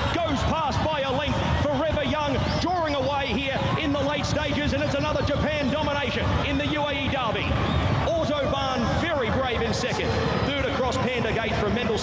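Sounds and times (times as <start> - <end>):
horse-racing commentator speaking: 0.0 - 12.0.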